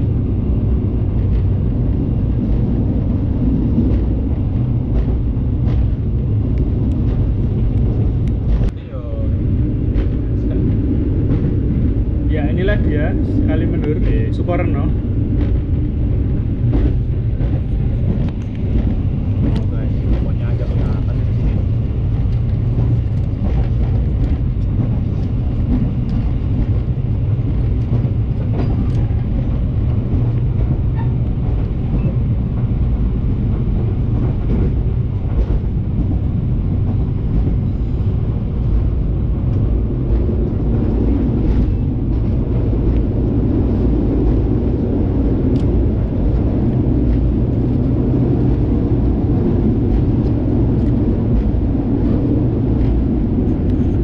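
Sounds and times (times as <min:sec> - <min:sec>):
train wheels rumbling on rails: 0:00.0 - 0:54.0.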